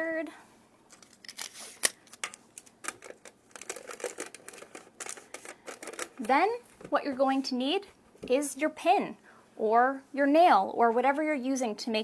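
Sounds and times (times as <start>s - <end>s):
tape pulled from dispenser: 0.9s - 2.7s
foil crinkling: 1.0s - 6.3s.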